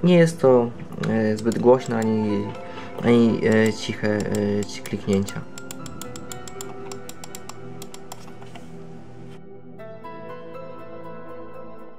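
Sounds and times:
background music: 0.0s - 11.9s
mouse button clicks: 1.4s - 2.2s, 3.5s - 8.7s.

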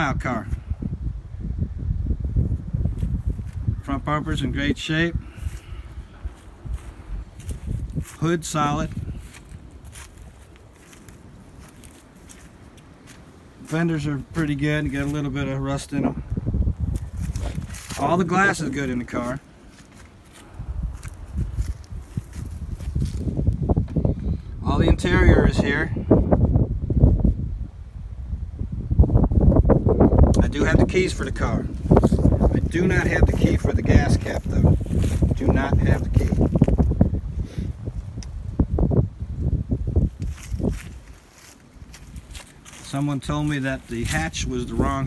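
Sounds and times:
wind rumbling on microphone: 0.0s - 45.0s
soft footsteps: 5.4s - 15.2s, 16.9s - 24.1s, 40.0s - 44.4s.

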